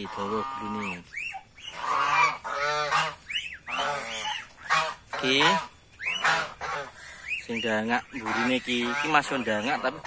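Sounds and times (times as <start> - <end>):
geese honking: 0.0 - 10.0.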